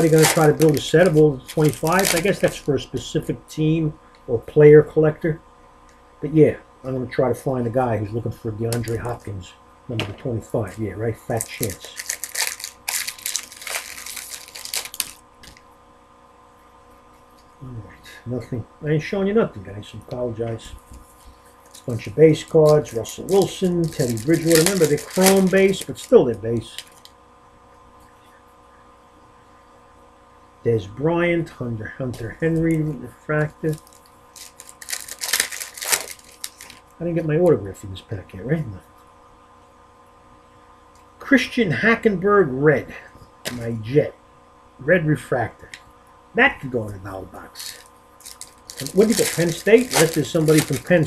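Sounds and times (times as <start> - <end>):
foil wrappers crinkling: 0.0 - 2.7, 8.8 - 9.3, 10.5 - 15.6, 21.6 - 27.1, 32.5 - 36.9, 47.5 - 51.0.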